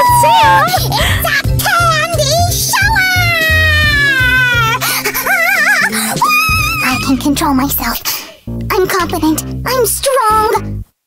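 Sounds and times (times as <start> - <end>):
cartoon character crying out: 0.0 - 2.0, 2.7 - 7.2
background music: 0.0 - 10.9.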